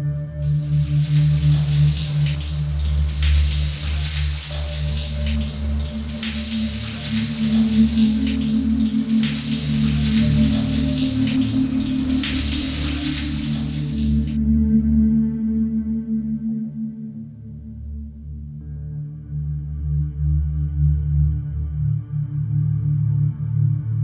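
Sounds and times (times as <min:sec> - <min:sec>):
low sustained music: 0:00.0 - 0:24.0
water splashing on tiles: 0:00.2 - 0:14.4
shower water spraying: 0:00.4 - 0:14.4.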